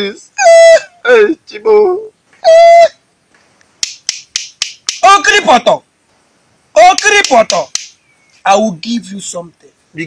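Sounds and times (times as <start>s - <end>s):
sharp clicks: 3.6s - 5.1s, 6.8s - 8.0s.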